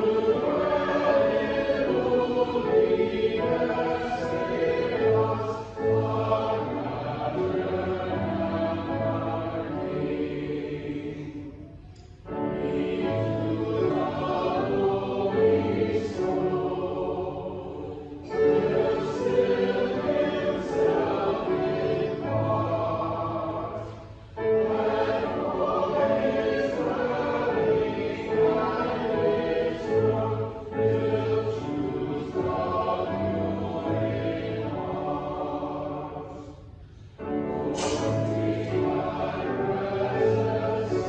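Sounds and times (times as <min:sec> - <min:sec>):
choir and congregation singing hymn: 0:00.0 - 0:41.0.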